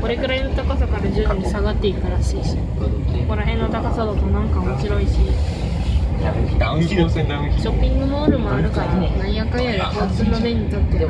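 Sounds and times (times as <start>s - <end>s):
electric train rumbling: 0.0s - 11.0s
people talking: 0.0s - 11.0s.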